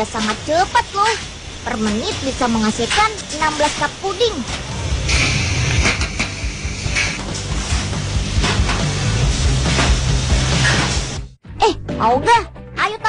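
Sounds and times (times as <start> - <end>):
hiss: 0.0 - 11.4
background music: 1.7 - 13.0.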